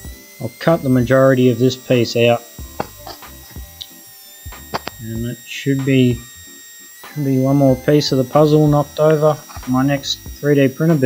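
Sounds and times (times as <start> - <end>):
speech: 0.4 - 2.4, 5.0 - 6.2, 7.2 - 11.0.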